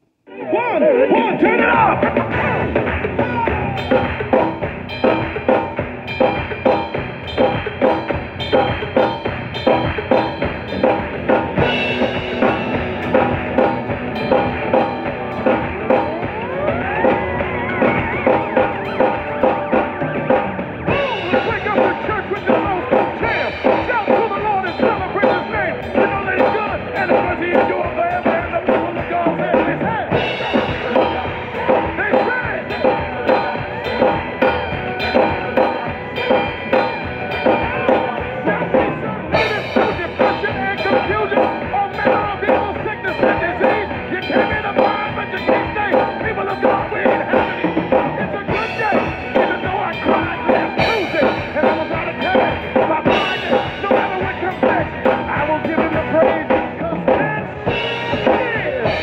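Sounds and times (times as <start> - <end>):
gospel band with vocals: 0.3 - 59.0
drum kit groove: 0.6 - 59.0.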